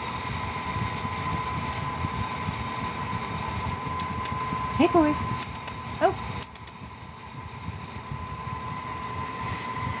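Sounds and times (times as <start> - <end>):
fan-like hum: 0.0 - 10.0.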